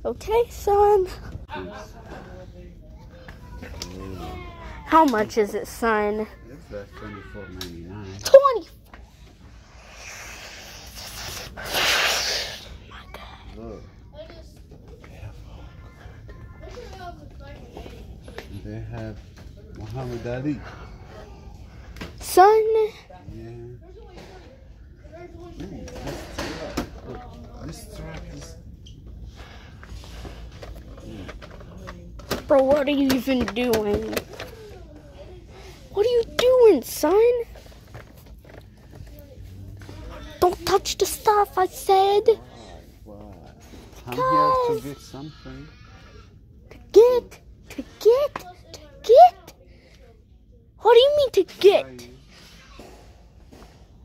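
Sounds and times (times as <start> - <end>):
low background noise: 0.0 - 54.0.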